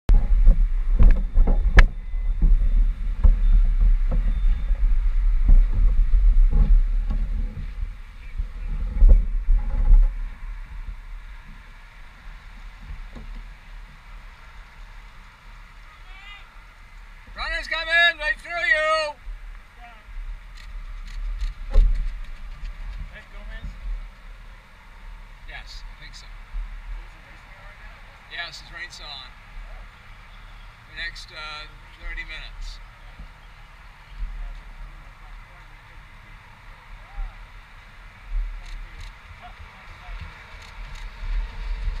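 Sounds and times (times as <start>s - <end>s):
wind rumbling on microphone: 0.1s - 30.9s, 31.7s - 42.0s
faint traffic noise: 0.1s - 42.0s
faint voices of people: 36.9s - 37.5s.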